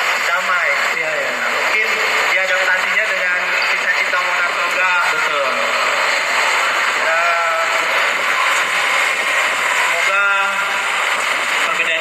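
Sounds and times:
crowd hubbub: 0:00.0 - 0:12.0
man speaking over loudspeaker: 0:00.2 - 0:05.9, 0:06.9 - 0:08.1, 0:09.9 - 0:10.9, 0:11.6 - 0:12.0.

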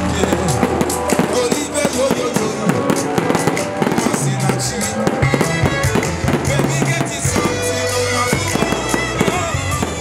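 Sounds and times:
fireworks banging: 0:00.0 - 0:10.0
music with steady bass line: 0:00.0 - 0:10.0.

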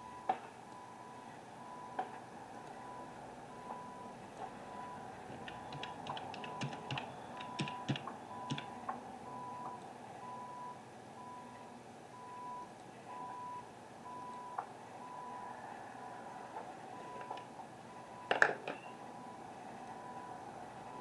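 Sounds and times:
reversing alarm beeping: 0:00.0 - 0:02.0, 0:02.6 - 0:11.6, 0:12.2 - 0:15.6, 0:16.9 - 0:21.0
sharp clicks and knocks: 0:05.3 - 0:09.0.

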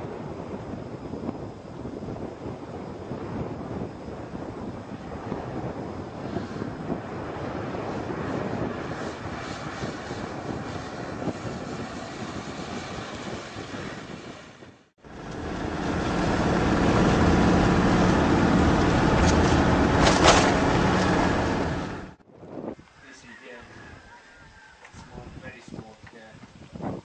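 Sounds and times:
engine drone inside cab: 0:15.0 - 0:22.2
off-road vehicle driving on gravel: 0:15.0 - 0:22.2.

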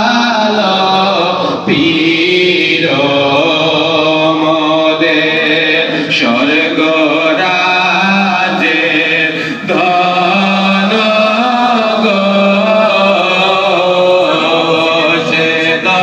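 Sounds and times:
man singing into a microphone: 0:00.0 - 0:16.0.

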